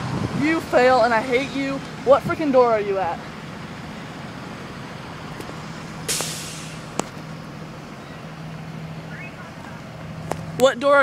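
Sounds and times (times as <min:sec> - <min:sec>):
buses idling: 0:00.0 - 0:11.0
air brake hiss: 0:06.1 - 0:06.9.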